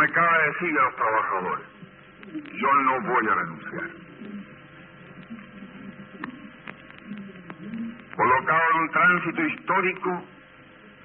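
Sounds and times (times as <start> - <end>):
radio hum and hiss: 0.0 - 11.0.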